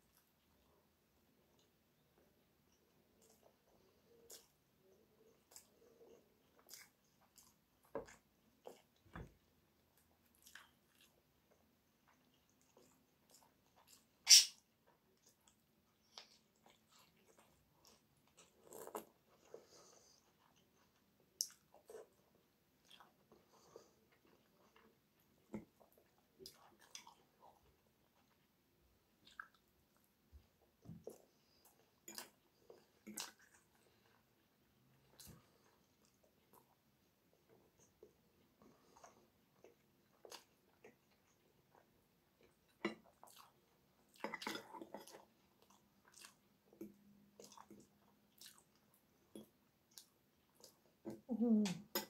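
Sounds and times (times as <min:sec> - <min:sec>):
person chewing food: 0:00.0 - 0:51.2.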